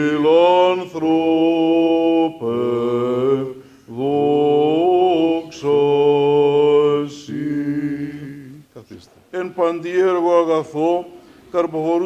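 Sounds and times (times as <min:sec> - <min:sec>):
man chanting: 0:09.4 - 0:12.0.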